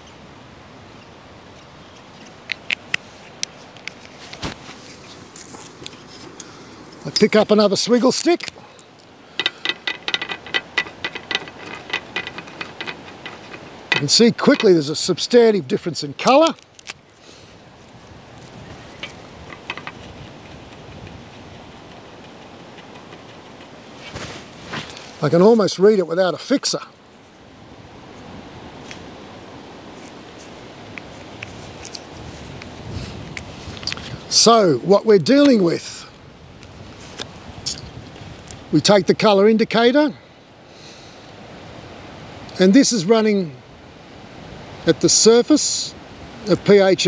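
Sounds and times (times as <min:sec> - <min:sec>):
low rushing outdoor background noise: 0:00.0 - 0:47.0
stir stick scraping plastic: 0:09.5 - 0:14.8.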